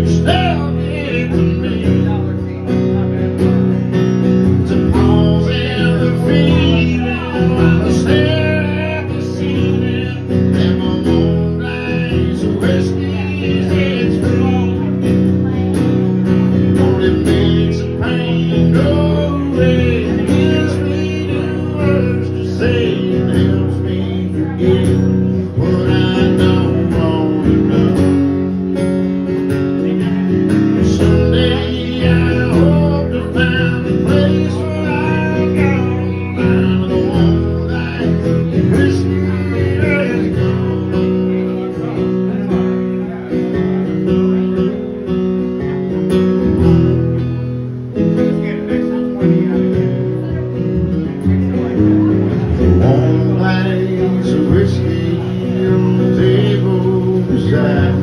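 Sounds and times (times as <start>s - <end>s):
man singing country song: 0.0s - 58.0s
strummed acoustic guitar: 0.0s - 58.0s.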